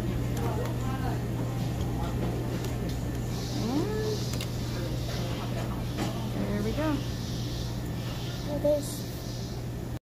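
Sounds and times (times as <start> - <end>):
restaurant room hum: 0.0 - 10.0.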